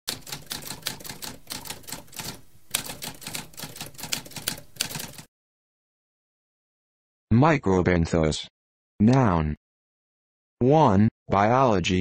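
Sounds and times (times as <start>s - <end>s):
typewriter keys clattering: 0.1s - 5.3s.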